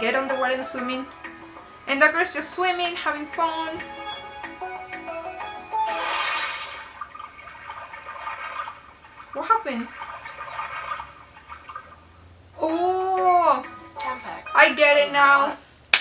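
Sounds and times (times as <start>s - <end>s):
light background music: 0.0s - 6.8s, 12.6s - 15.6s
burst of rushing noise: 5.9s - 7.0s.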